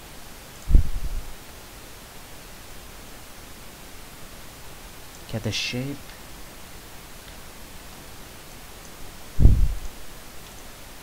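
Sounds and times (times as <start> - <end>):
steady hiss: 0.0 - 11.0
dull low thump: 0.7 - 1.3, 9.4 - 10.0.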